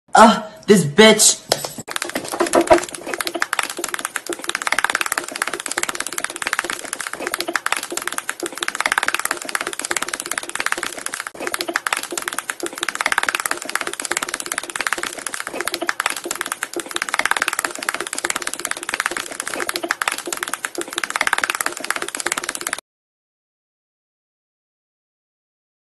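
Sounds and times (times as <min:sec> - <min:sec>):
dense rapid clicking: 0:01.8 - 0:22.8.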